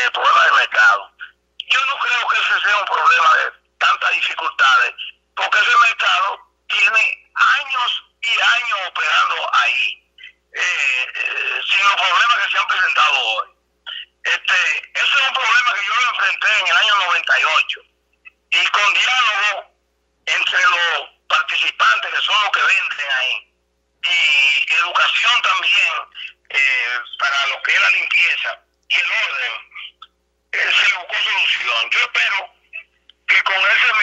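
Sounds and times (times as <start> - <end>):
voice talking over telephone: 0.0 - 34.0.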